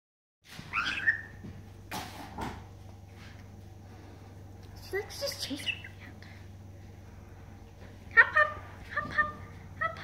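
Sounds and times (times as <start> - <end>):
steady low hum: 0.5 - 10.0
parrot whistled call: 0.7 - 1.4.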